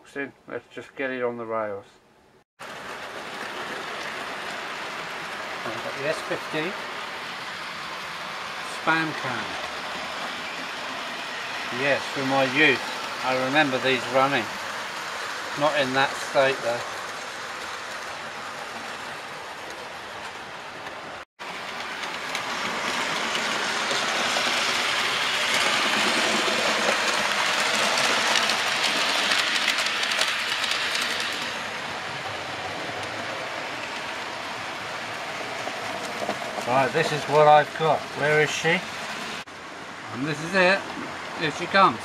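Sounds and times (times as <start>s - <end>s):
model trains rattling on track: 2.6s - 42.0s.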